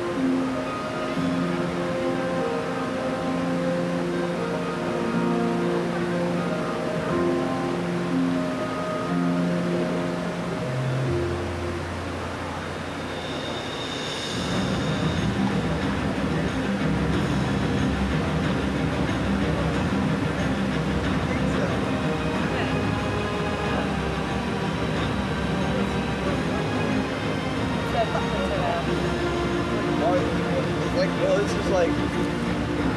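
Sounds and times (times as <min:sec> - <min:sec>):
background music held chords: 0:00.0 - 0:32.9
steady low rumble: 0:13.8 - 0:32.9
crowd voices: 0:14.5 - 0:32.9.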